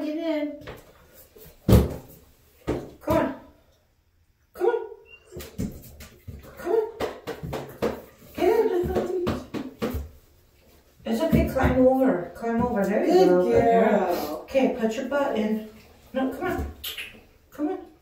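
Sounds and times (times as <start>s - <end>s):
dog claws knocking on bathtub: 5.6s - 10.2s.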